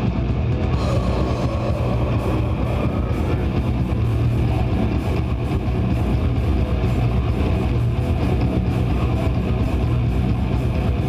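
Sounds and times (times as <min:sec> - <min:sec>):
death metal band playing live: 0:00.0 - 0:11.0.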